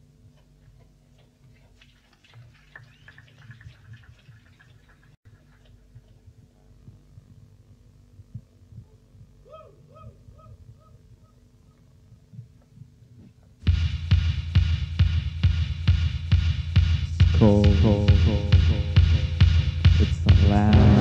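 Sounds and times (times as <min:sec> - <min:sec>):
low throbbing equipment hum: 0:05.4 - 0:21.0.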